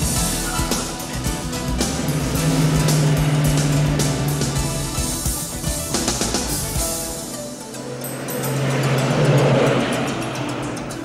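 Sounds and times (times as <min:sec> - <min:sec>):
background music: 0:00.0 - 0:11.0
car passing close by: 0:07.8 - 0:11.0.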